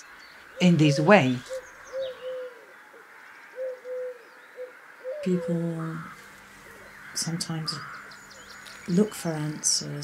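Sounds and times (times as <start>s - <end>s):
forest birds calling low notes: 0.0s - 10.0s.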